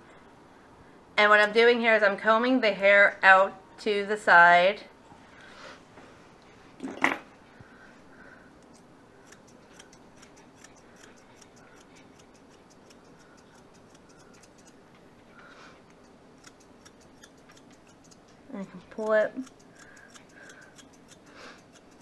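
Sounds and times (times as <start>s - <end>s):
scissors snipping hair: 8.6s - 14.8s, 15.9s - 22.0s.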